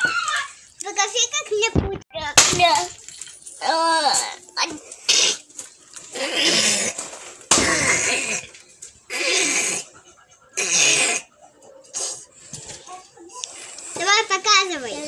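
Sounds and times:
child laughing and squealing: 0.0s - 0.6s.

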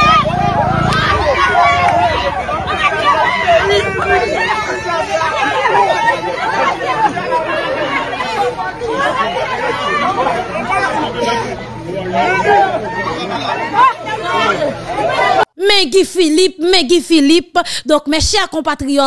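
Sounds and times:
crowd babble: 0.0s - 15.5s.

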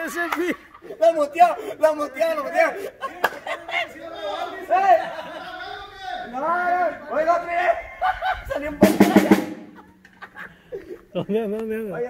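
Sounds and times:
drum kit hits: 8.8s - 9.8s.

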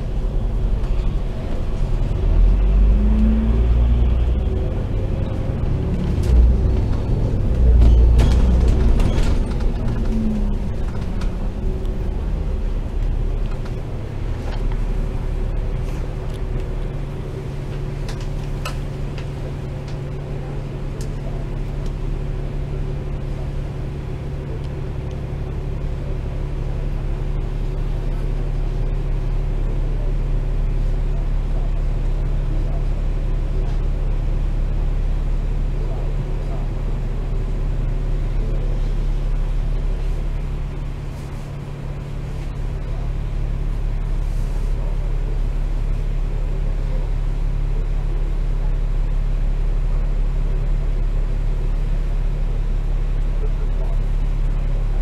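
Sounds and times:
bus engine idling: 0.0s - 55.0s.

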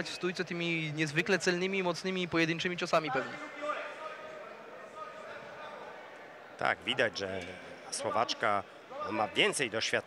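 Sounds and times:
faint crowd murmur: 0.0s - 10.0s.

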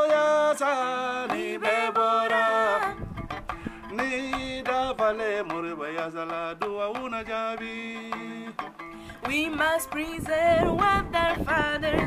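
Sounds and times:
plucked lute notes: 0.0s - 12.0s
man singing wavering melody: 3.9s - 8.7s.

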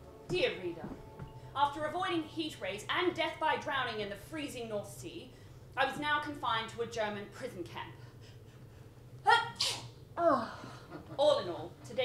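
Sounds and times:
woman sneezing: 9.3s - 10.6s.

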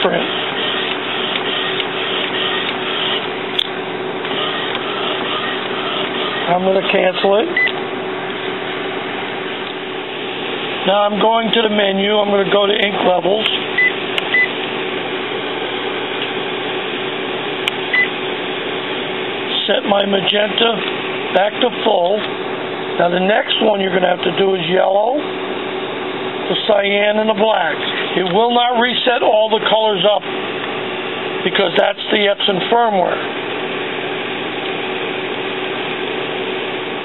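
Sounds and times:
inkjet printer printing: 0.0s - 9.6s
background hum and hiss: 0.0s - 37.0s
short high printer beep: 13.8s - 14.5s.

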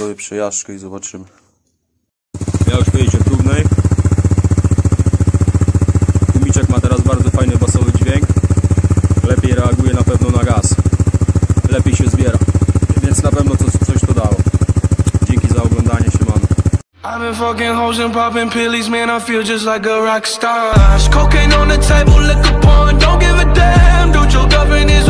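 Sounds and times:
atv engine idling: 2.4s - 16.8s.

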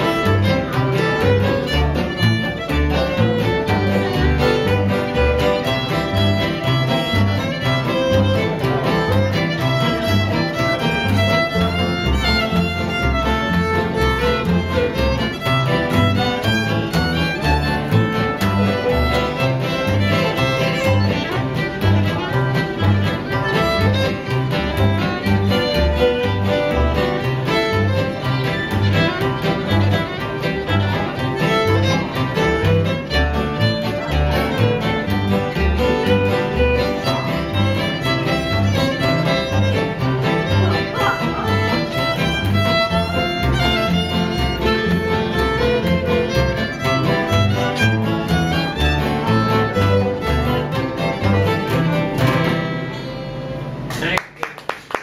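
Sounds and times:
fiddle: 0.0s - 53.8s
banjo: 0.0s - 53.9s
acoustic guitar: 0.0s - 54.2s
upright bass: 0.0s - 54.4s.

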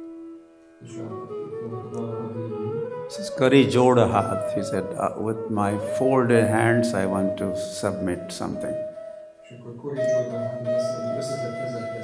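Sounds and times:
harmonium playing sustained chords: 0.0s - 9.1s.

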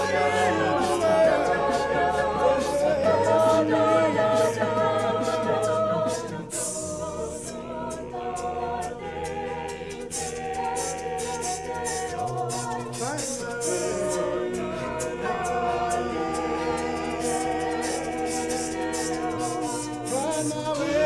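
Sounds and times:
a cappella group singing: 0.0s - 21.0s.

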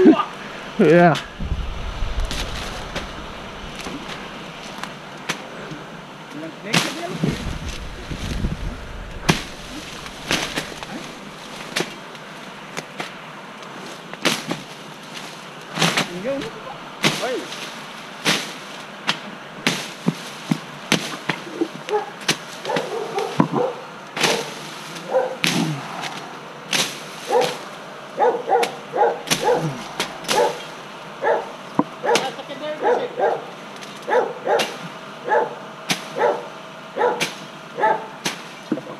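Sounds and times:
vines and brush snapping: 1.3s - 5.5s, 6.8s - 13.2s, 13.8s - 23.4s, 28.6s - 30.9s.

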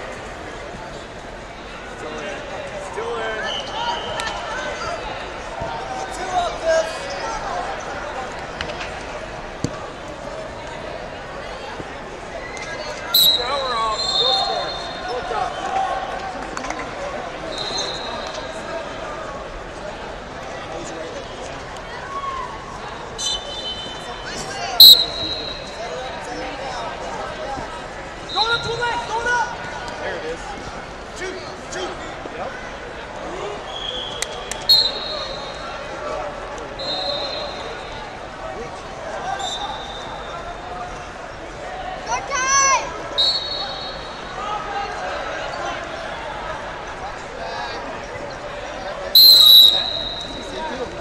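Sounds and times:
voices echoing in hall: 0.0s - 51.0s
referee's whistle: 13.2s - 15.1s, 17.5s - 18.4s, 24.8s - 25.8s, 33.7s - 35.6s, 36.8s - 38.0s, 39.4s - 40.3s, 43.2s - 44.3s, 49.2s - 50.6s
high steady squeals: 49.2s - 50.5s.

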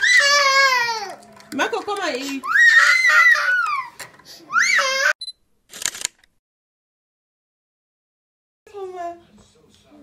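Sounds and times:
camera shutter click effect: 5.7s - 6.3s.

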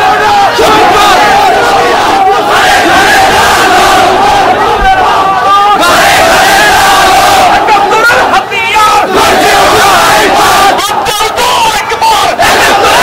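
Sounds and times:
crowd shouting slogans in chorus: 0.0s - 13.0s.

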